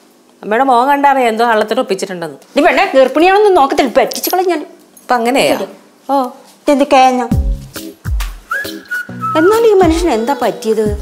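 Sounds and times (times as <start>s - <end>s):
high whistle-like melody: 8.4s - 10.0s.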